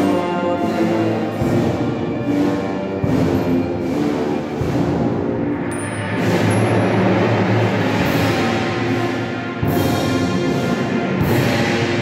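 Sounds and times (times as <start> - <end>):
brass chords: 0.0 - 12.0.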